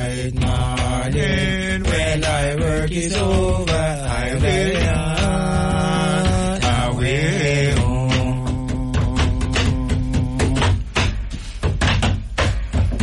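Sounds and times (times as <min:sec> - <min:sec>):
voices chanting: 0:00.0 - 0:10.8
hand drumming on a desk: 0:00.0 - 0:13.0.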